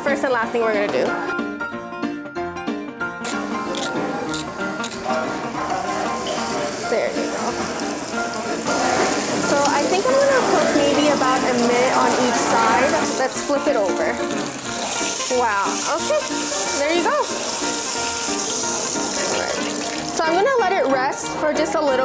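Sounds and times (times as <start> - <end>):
background music: 0.0 - 22.0
steak sizzling in a frying pan: 3.3 - 21.2.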